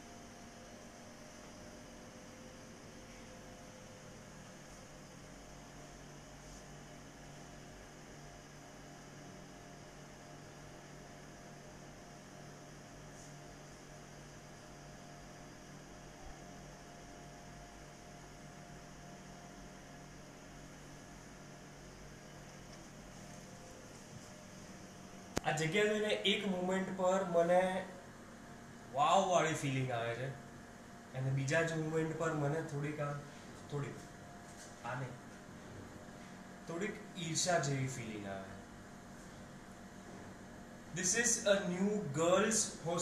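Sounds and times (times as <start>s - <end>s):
faint electrical hum with hiss: 0.0s - 43.0s.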